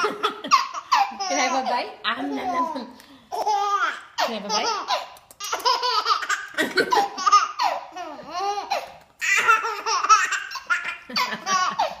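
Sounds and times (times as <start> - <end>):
baby laughing: 0.0 - 12.0.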